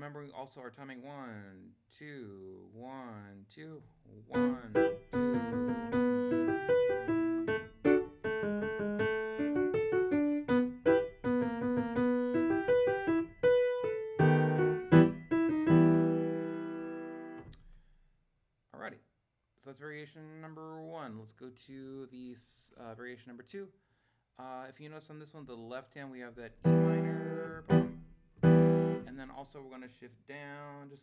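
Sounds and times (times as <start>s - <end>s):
piano melody with chords: 4.4s - 17.4s, 26.6s - 29.1s.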